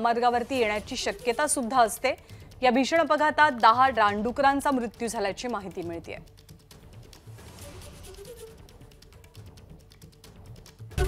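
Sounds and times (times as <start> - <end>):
soft news background music: 0.0 - 11.0.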